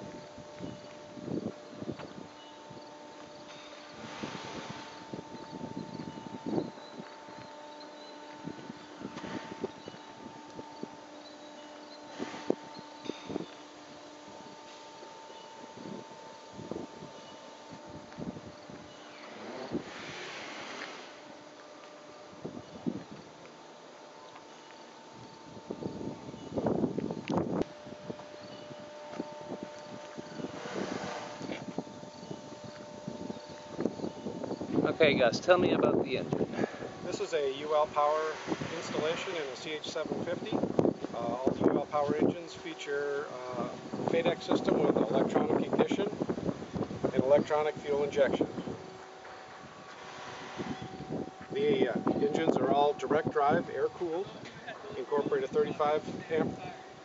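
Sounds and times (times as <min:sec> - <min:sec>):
wind gusting on microphone: 0:00.0 - 0:23.7, 0:25.0 - 0:57.0
faint steady hum: 0:00.0 - 0:57.0.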